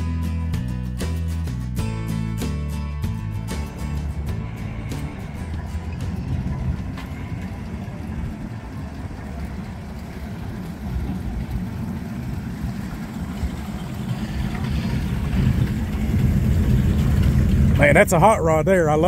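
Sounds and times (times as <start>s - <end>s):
car engine low rumble passing: 1.5s - 19.0s.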